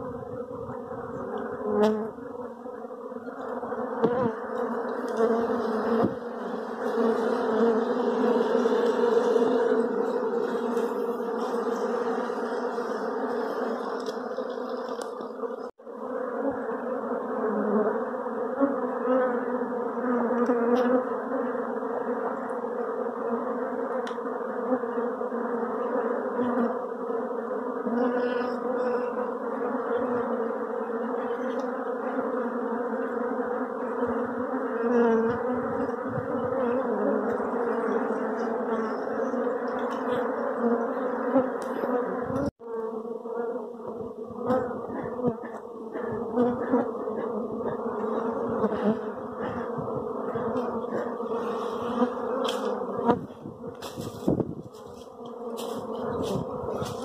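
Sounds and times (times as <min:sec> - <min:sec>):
honey bees buzzing: 0:00.0 - 0:57.0.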